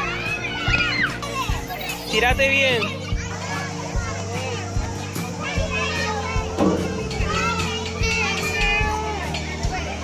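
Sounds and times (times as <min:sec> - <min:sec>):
children shouting and chattering: 0:00.0 - 0:10.0
music with low tones and thumps: 0:00.0 - 0:10.0.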